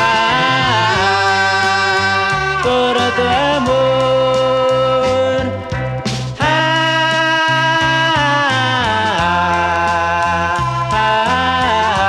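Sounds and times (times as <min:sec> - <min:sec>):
lead line holding long notes: 0:00.0 - 0:07.6
slow ballad instrumental: 0:00.0 - 0:12.0.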